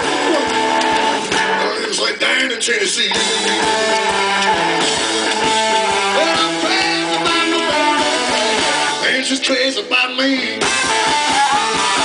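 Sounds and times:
electric guitar run: 0.0 - 1.8, 3.0 - 9.2, 10.6 - 12.0
steady drum beat: 0.0 - 2.0, 2.8 - 9.2, 10.6 - 12.0.

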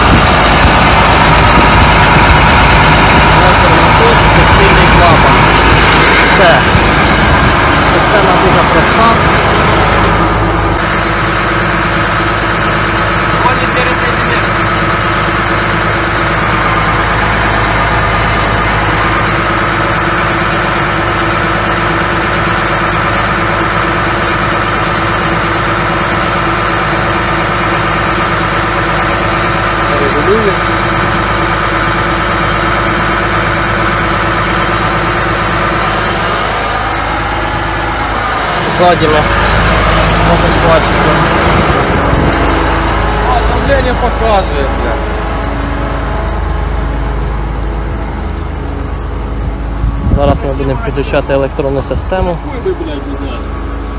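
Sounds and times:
tractor diesel engine idling: 0.0 - 53.9.

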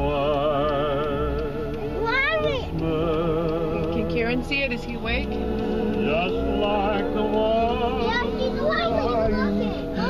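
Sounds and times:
christmas music from outdoor speakers: 0.0 - 10.0
children chattering and calling out: 1.9 - 2.9, 6.1 - 10.0.

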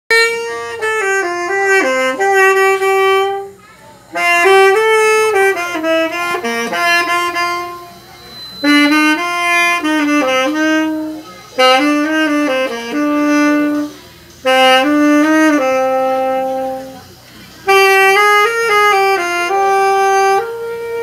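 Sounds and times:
saxophone slow melody: 0.1 - 21.0.

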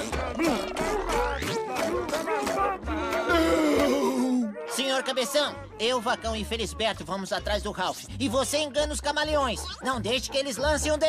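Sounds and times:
wordless cartoon character voices: 0.0 - 7.9
background music: 0.0 - 11.0.

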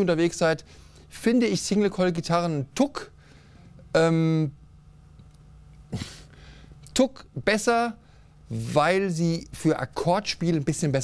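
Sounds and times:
faint low hum: 0.0 - 11.0
person breath or throat sound: 5.9 - 6.7.

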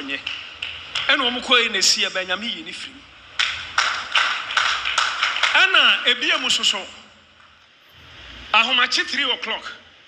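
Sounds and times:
hand claps: 0.0 - 1.4, 3.4 - 6.8.

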